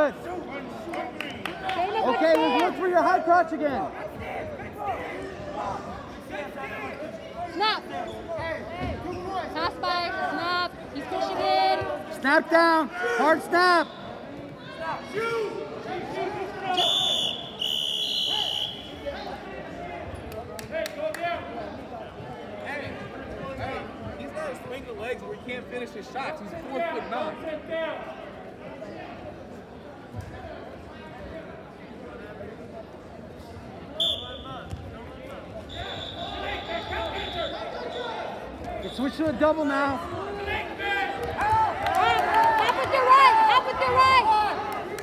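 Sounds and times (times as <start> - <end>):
crowd voices: 0.0 - 45.0
referee's whistle blasts: 16.7 - 19.0, 34.0 - 34.7, 35.7 - 39.2.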